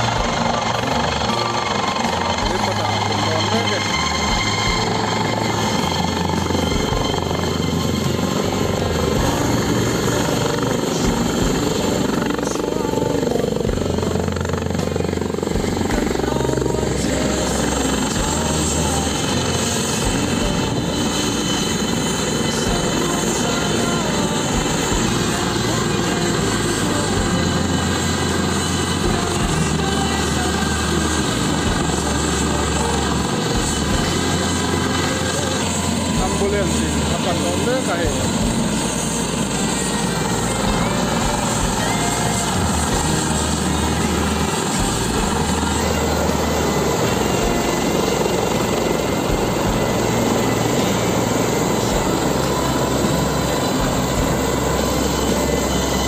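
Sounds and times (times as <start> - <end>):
helicopter turbine and rotor: 0.0 - 56.0
music playing: 0.0 - 56.0.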